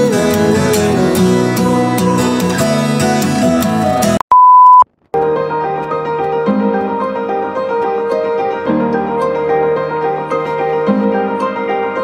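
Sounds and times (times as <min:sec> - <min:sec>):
acoustic guitar music: 0:00.0 - 0:04.2, 0:05.0 - 0:12.0
pure beep: 0:04.2 - 0:04.9.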